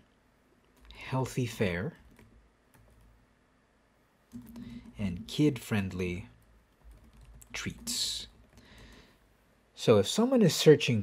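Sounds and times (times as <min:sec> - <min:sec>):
faint keyboard typing: 0:00.6 - 0:03.2, 0:04.3 - 0:09.2.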